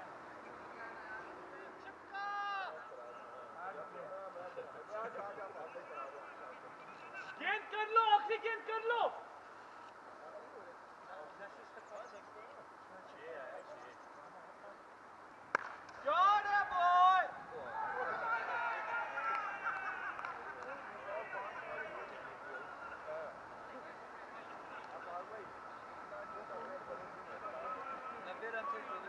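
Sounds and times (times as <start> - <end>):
fielders shouting appeal: 7.3 - 9.3, 16.0 - 23.4
cricket ball crack: 15.5 - 16.1.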